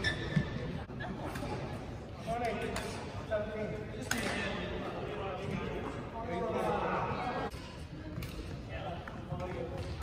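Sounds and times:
men talking indistinctly: 0:02.2 - 0:07.5.

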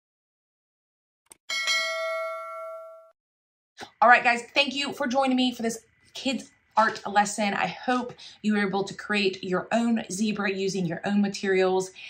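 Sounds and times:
bell-like ding: 0:01.5 - 0:03.2.

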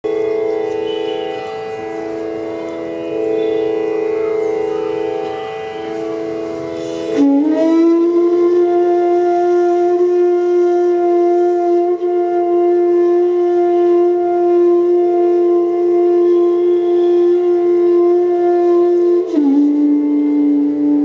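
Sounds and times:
bamboo flute playing: 0:00.0 - 0:21.0
steady drone: 0:00.0 - 0:21.0.

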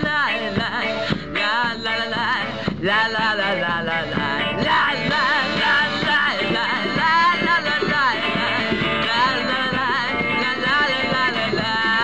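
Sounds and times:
drums: 0:00.0 - 0:12.0
guitar: 0:00.0 - 0:12.0
upright double bass: 0:00.0 - 0:12.0.

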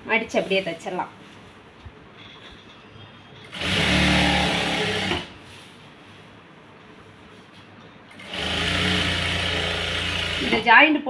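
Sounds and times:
sewing machine stitching: 0:03.4 - 0:05.4, 0:08.1 - 0:10.7.

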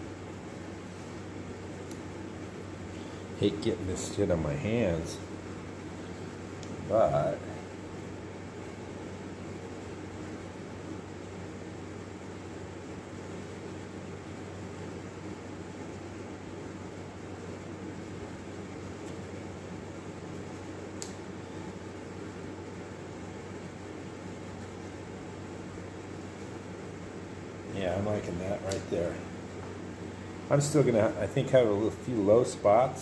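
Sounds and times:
room hum and hiss: 0:00.0 - 0:33.0.

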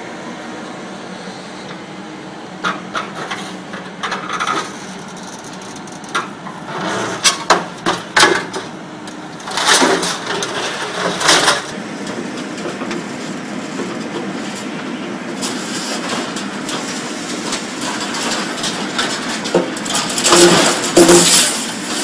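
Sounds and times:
excavator engine running: 0:00.0 - 0:22.0
hydraulic shear clanking on scrap metal: 0:02.6 - 0:08.8, 0:09.4 - 0:22.0
metal grinding: 0:15.4 - 0:22.0.

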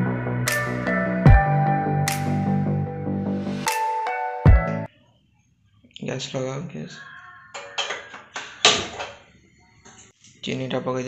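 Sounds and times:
background music: 0:00.0 - 0:04.9.

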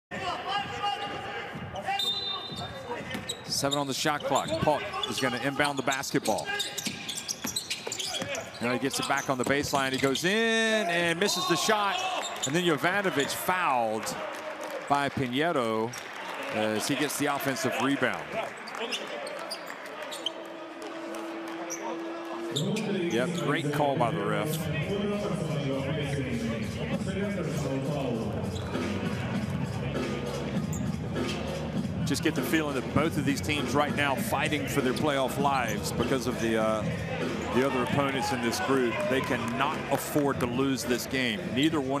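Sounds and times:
arena crowd noise: 0:00.1 - 0:42.0
shoe squeaks and knocks: 0:00.9 - 0:10.7, 0:11.9 - 0:12.6, 0:30.6 - 0:31.5.

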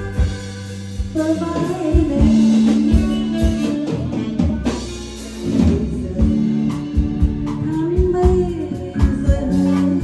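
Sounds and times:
drum kit: 0:00.0 - 0:10.0
guitar: 0:00.0 - 0:10.0.

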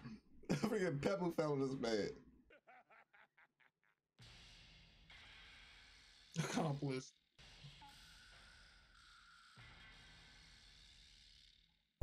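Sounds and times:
faint wheezy laughter: 0:02.5 - 0:04.0.

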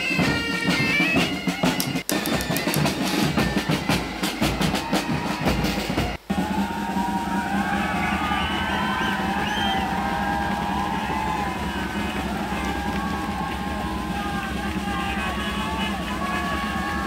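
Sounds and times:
pipe and drums band playing: 0:00.0 - 0:17.0
steady drum beats: 0:00.0 - 0:17.0
crowd cheering and shouting: 0:02.3 - 0:17.0.

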